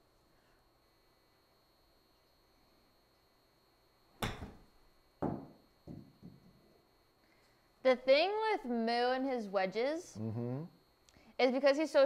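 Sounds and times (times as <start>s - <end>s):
sharp thud: 4.2s - 4.6s
golf club striking ball: 4.2s - 5.5s.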